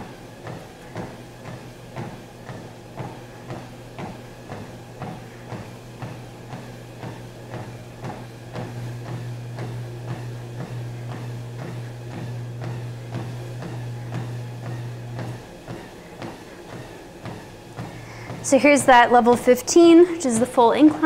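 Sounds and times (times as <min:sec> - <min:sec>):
footsteps on treadmill belt: 0:00.0 - 0:21.0
treadmill motor hum: 0:00.0 - 0:21.0.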